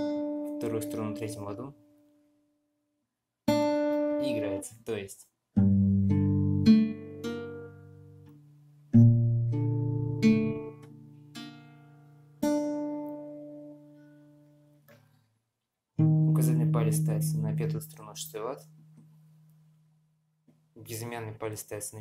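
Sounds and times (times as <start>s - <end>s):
fingerpicked acoustic guitar: 0.0s - 2.1s, 3.4s - 4.6s, 5.6s - 15.3s, 16.0s - 19.7s.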